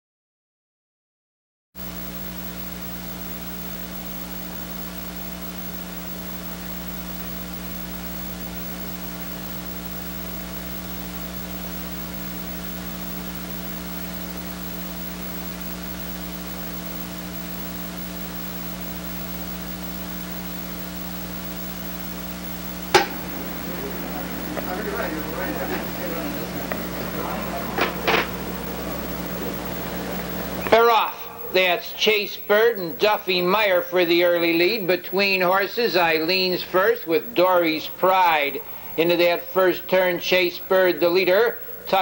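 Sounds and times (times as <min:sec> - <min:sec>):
electrical mains hum: 0:01.8 - 0:42.0
faint hiss: 0:02.4 - 0:42.0.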